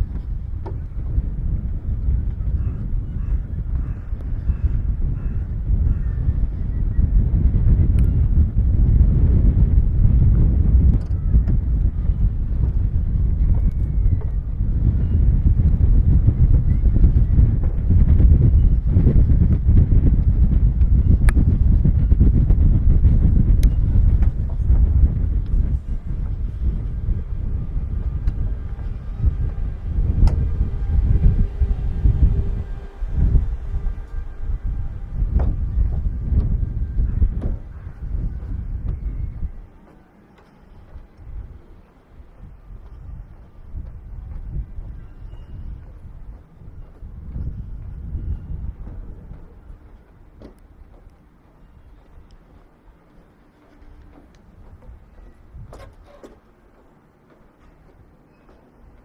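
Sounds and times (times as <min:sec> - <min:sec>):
wind buffeting microphone: 0:00.0 - 0:59.0
faint steady tones: 0:11.9 - 0:59.0.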